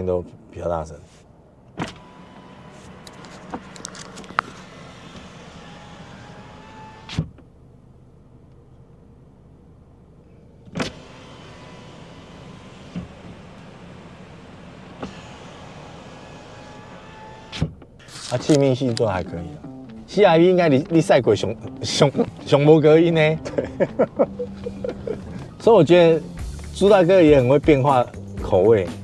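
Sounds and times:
outside traffic noise: 0:00.0 - 0:29.0
car power window moving: 0:01.7 - 0:07.5, 0:10.6 - 0:23.1, 0:23.8 - 0:26.4.

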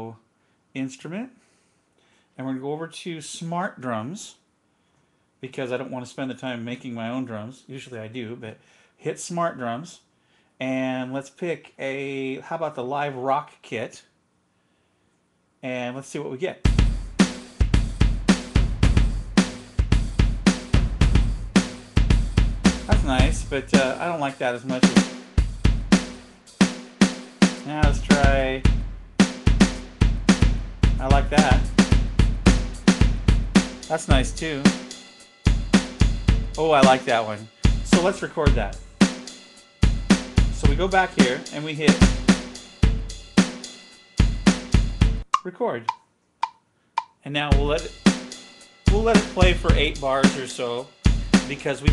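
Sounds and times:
rock drum beat: 0:16.7 - 0:45.3, 0:47.5 - 0:51.9.

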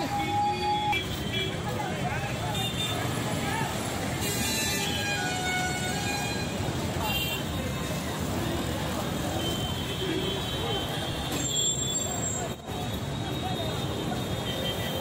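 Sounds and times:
people talking: 0:00.0 - 0:04.3, 0:06.9 - 0:15.0
motorbikes and cars passing: 0:00.0 - 0:11.3.

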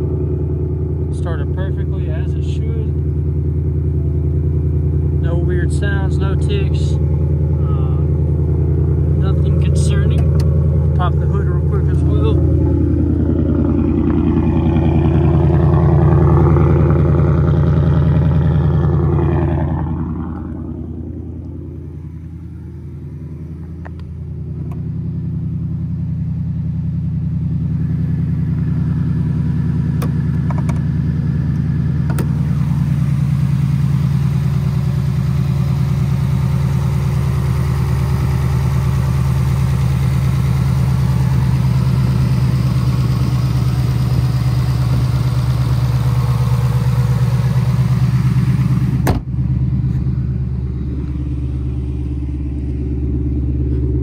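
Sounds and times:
car engine idling: 0:00.0 - 0:54.0.

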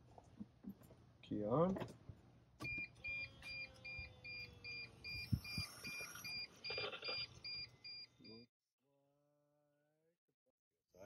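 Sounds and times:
high electronic warning beep: 0:02.7 - 0:08.5.

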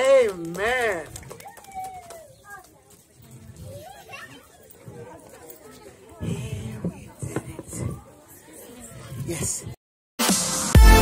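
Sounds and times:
adults and children talking: 0:00.0 - 0:09.8.

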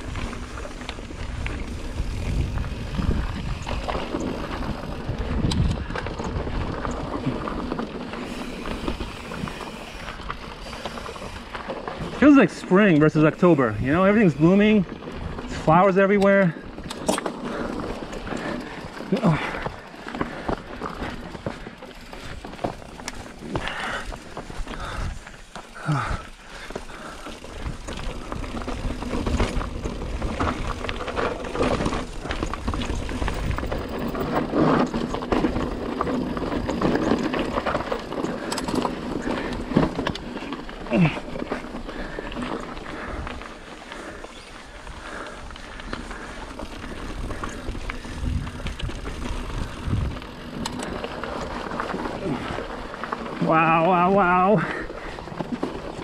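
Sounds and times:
bike knocking and rattling on rocks: 0:00.0 - 0:56.0
bike tyres rolling on rocky dirt: 0:00.0 - 0:56.0
wind: 0:00.0 - 0:56.0.

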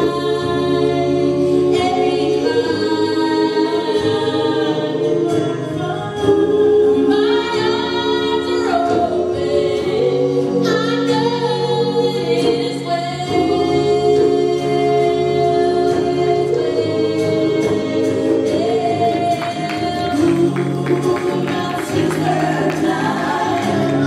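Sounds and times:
gospel choir singing: 0:00.0 - 0:24.0.

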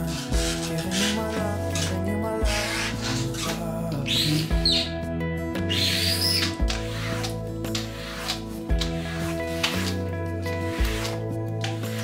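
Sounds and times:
squeegee squeaking on glass: 0:00.0 - 0:05.0, 0:05.6 - 0:10.0
background music with low beat: 0:00.0 - 0:12.0.

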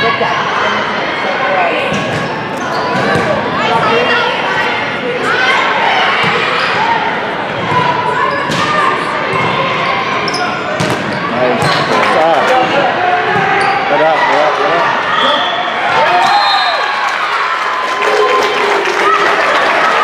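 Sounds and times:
people shouting and talking: 0:00.0 - 0:20.0.

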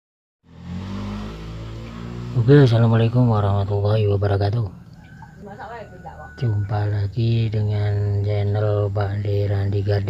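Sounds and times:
engine humming steadily: 0:00.5 - 0:10.0.

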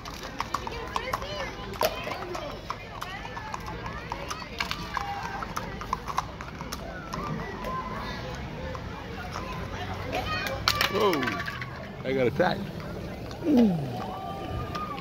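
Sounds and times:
horse hooves clip-clopping on asphalt: 0:00.0 - 0:15.0
people's voices: 0:00.0 - 0:15.0.

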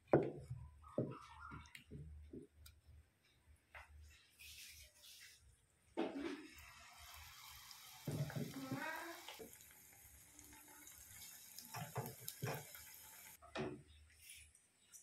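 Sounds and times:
batter sizzling in hot oil: 0:06.4 - 0:13.4.

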